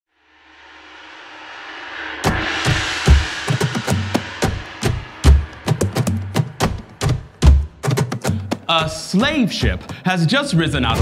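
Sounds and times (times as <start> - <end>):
rising hiss riser effect: 0.1 - 7.4.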